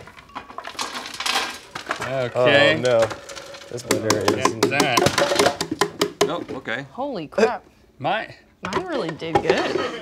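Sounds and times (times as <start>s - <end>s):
plastic pieces clattering on metal trays: 0.0s - 5.8s.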